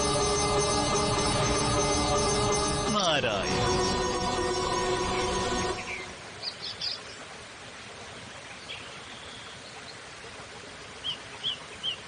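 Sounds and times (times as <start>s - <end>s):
outdoor ambience hiss: 0.0s - 12.0s.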